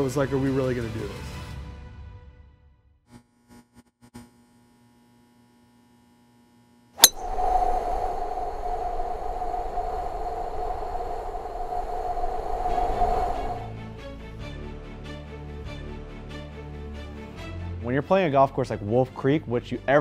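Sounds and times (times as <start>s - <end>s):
sharp hit: 7.0s - 8.3s
rushing drone with held tone: 7.0s - 13.8s.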